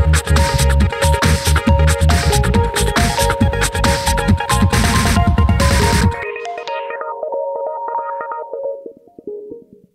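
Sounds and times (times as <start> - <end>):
quick electronic melodic notes: 0.0 - 9.5.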